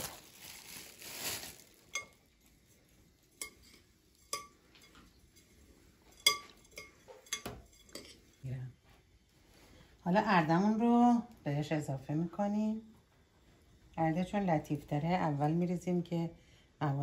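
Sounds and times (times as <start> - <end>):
spoon clinking against glass: 6.2 - 8.2.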